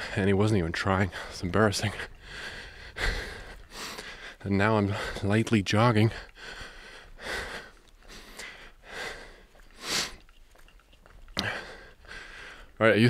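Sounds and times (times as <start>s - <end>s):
man breathing hard: 1.1s - 5.3s, 6.0s - 10.6s, 11.3s - 12.8s.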